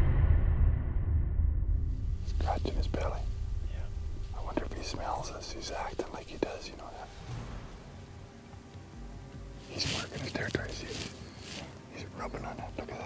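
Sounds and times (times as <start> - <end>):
low rumble: 0.0 - 9.6
men whispering: 2.2 - 7.3, 9.6 - 13.0.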